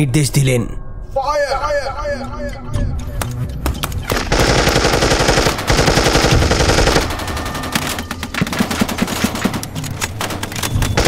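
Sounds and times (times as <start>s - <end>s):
automatic gunfire: 4.1s - 7.8s.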